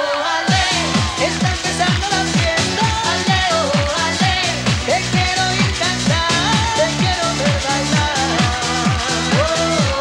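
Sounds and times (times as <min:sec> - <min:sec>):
dance-pop music: 0:00.0 - 0:10.0.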